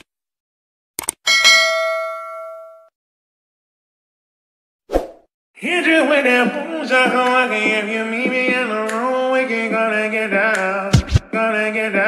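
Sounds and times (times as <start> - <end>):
bell ding: 1.3 - 2.9.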